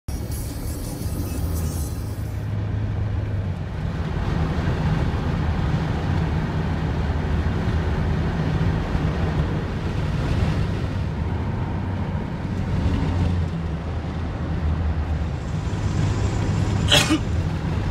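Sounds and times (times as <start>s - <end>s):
road and tyre noise: 0.0s - 17.9s
diesel truck engines droning: 0.1s - 17.9s.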